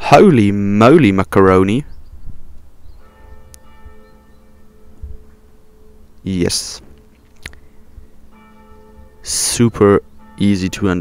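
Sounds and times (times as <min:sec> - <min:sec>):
bell ringing: 0:03.0 - 0:11.0.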